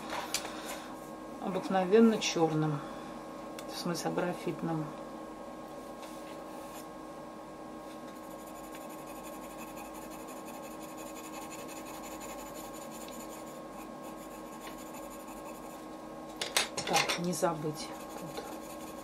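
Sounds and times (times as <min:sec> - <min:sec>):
pencil scratching on paper: 0:08.1 - 0:15.8, 0:17.8 - 0:19.0.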